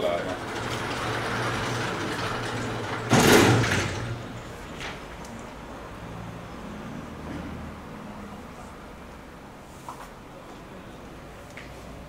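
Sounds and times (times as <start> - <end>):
blackboard panels sliding: 0.1 - 5.0.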